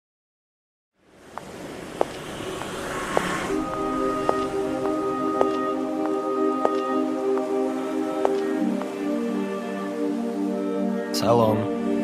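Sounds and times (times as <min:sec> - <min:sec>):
held instrumental chord: 0:03.5 - 0:12.0.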